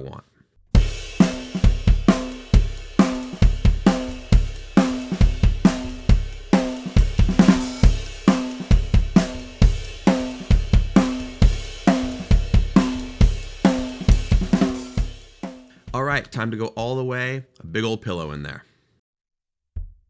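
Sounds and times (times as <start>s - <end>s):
drum kit groove: 0.7s - 16.9s
punchy kick drum thumps: 0.8s - 15.4s, 19.8s - 20.0s.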